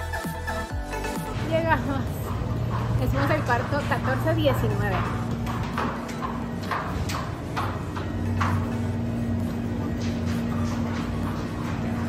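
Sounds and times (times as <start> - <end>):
steady low hum: 1.0 - 12.0.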